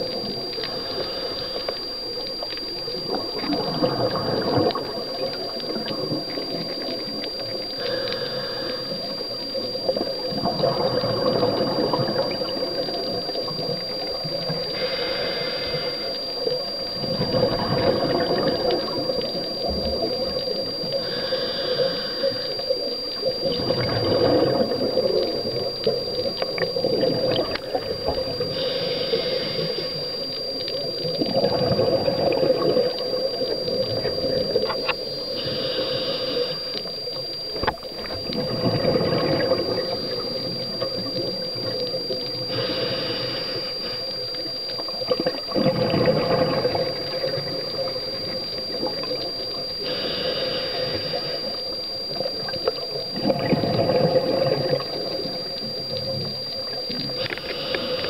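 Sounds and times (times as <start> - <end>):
high-pitched whine: 0.0 - 58.0
regulator bubbles gurgling: 0.0 - 58.0.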